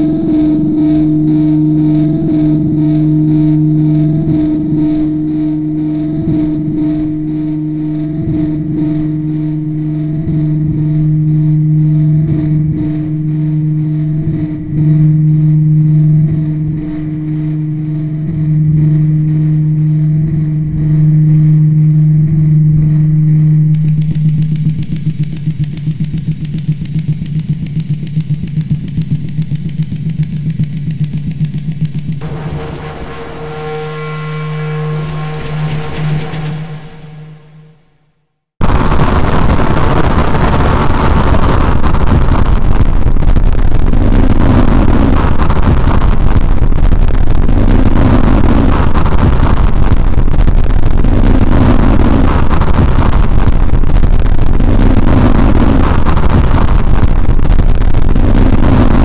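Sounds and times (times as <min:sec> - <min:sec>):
distorted low drone: 0:00.0 - 0:59.0
stuttering hissing static: 0:23.8 - 0:38.0, 0:38.6 - 0:59.0.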